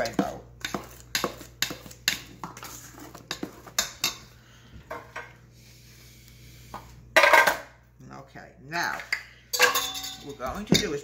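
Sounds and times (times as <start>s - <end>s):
metal spoon clinking in bowl: 9.5s - 11.0s.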